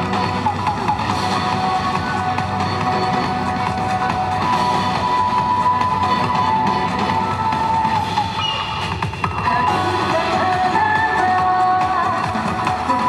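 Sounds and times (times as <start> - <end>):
loud dance music with full band: 0.0 - 13.0.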